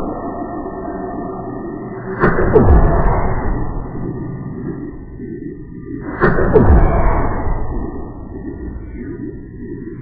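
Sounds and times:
low drawn-out drone: 0.0 - 10.0.

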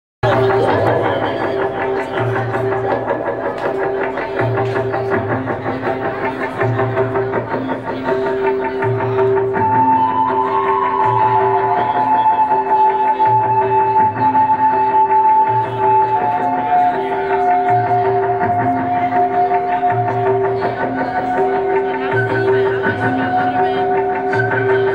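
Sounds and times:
high held melody line: 0.2 - 24.9
sustained instrumental notes: 0.2 - 24.9.

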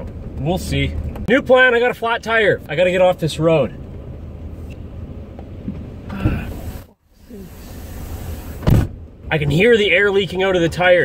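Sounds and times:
car cabin noise: 0.0 - 11.0
air hissing: 6.1 - 8.9.

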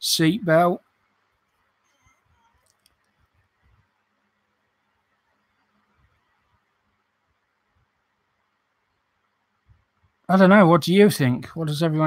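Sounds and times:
faint small clicks: 1.9 - 3.4.

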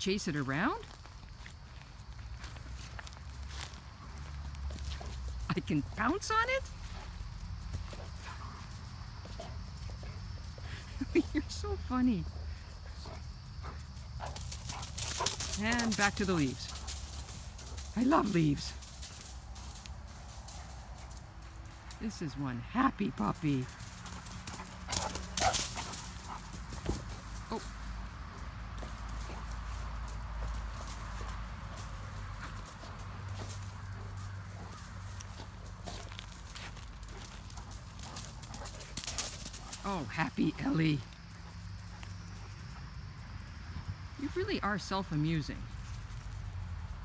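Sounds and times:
dog paws on dry grass: 0.4 - 44.5.

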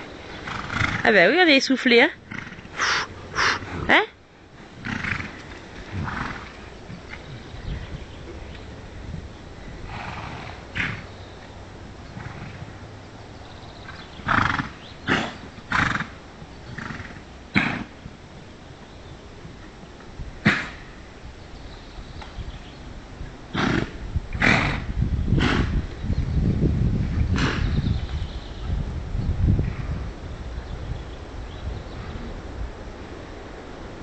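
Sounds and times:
horses blowing and snorting: 0.0 - 18.8, 19.4 - 21.6, 22.4 - 28.9.

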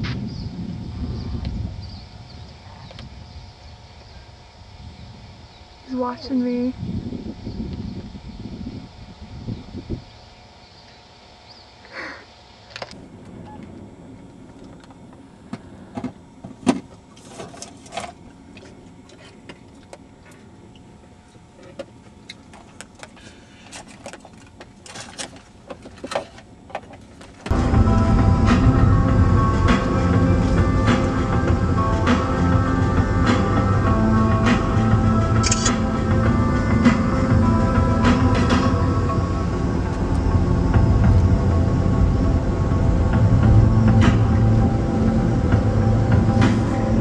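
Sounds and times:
car road noise hum: 24.4 - 47.0
loud music: 27.5 - 47.0.

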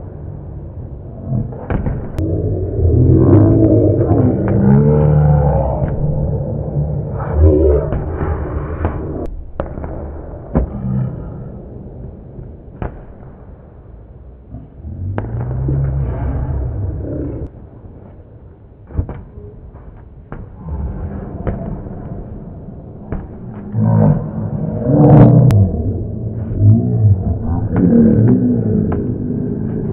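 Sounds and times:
low room rumble: 0.0 - 29.9.

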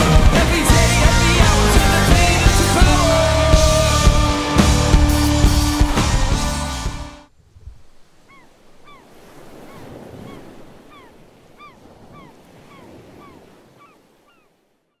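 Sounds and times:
band music: 0.0 - 7.3
surf washing over beach: 7.4 - 14.3
gulls calling: 7.8 - 15.0.

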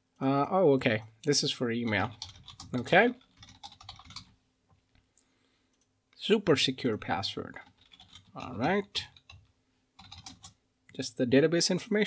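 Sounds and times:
typing on computer keyboard: 1.8 - 4.4, 7.6 - 10.6.

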